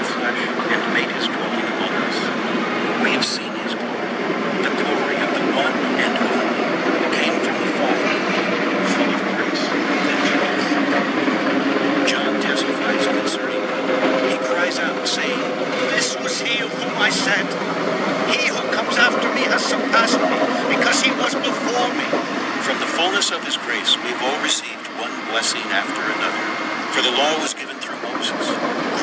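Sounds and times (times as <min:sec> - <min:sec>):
bulldozer diesel engine running: 0:00.0 - 0:29.0
man reading aloud faintly: 0:03.0 - 0:03.9, 0:04.6 - 0:11.0, 0:18.3 - 0:29.0.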